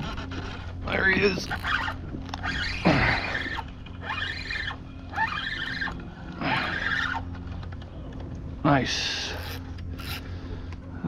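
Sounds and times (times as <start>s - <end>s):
fishing reel gear whine: 0.0s - 11.0s.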